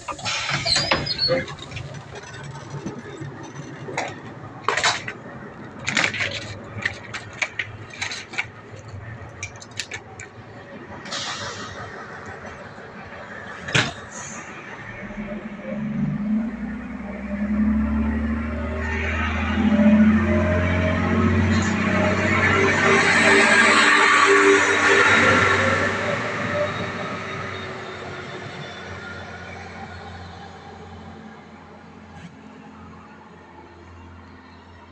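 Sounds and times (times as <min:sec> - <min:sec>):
train wheels rushing on rails: 0:00.0 - 0:15.4
diesel engine hum: 0:00.0 - 0:34.9.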